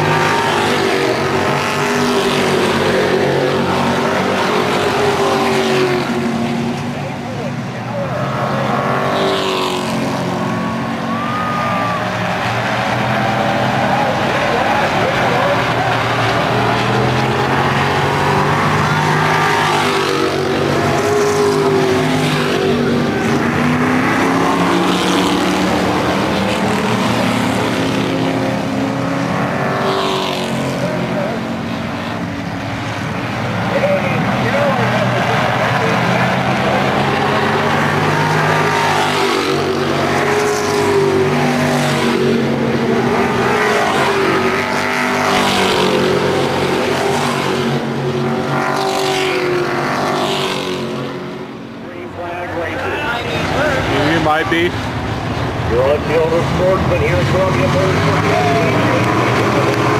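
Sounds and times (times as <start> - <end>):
race car engines passing by: 0.0 - 59.9.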